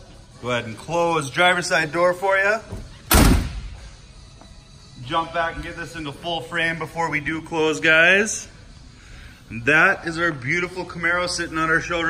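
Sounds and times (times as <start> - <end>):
car door slamming: 3.1 - 3.8.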